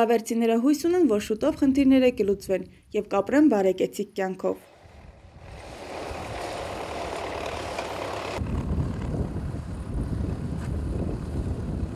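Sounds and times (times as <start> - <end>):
vehicles on gravel road: 4.6 - 11.9
wind rumble on microphone: 4.7 - 11.9.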